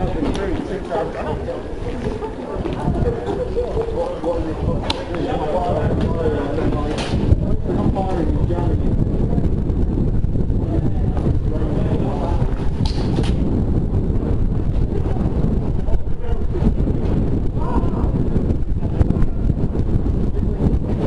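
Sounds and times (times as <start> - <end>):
faint voices: 0.0 - 21.0
wind buffeting microphone: 0.0 - 21.0.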